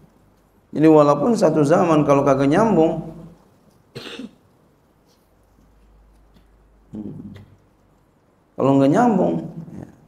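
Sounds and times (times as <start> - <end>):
man coughing: 3.9 - 4.4.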